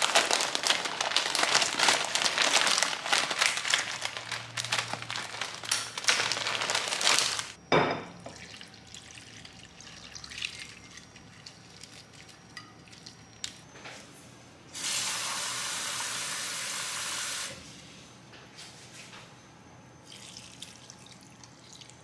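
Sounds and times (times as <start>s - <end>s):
water dripping and trickling: 8.3s - 13.2s.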